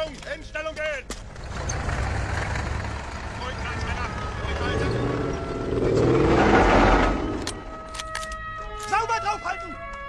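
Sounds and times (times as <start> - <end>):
loud rumble: 4.4 - 7.8
sharp clicks: 7.4 - 9.0.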